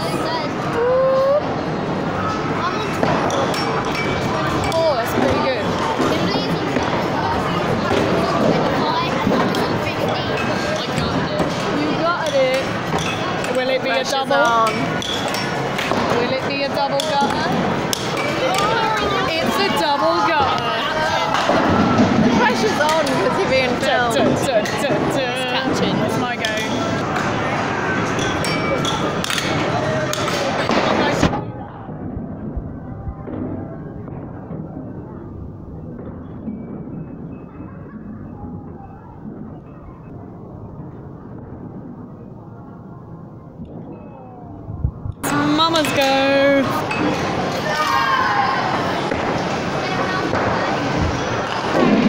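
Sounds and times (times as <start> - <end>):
indistinct voices: 43.5 - 52.0.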